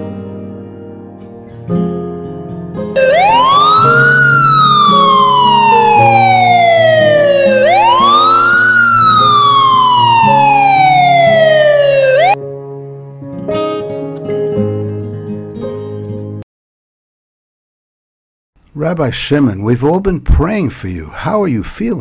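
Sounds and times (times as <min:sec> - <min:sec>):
guitar music: 0:00.0 - 0:16.4
ambulance siren wailing: 0:03.0 - 0:12.4.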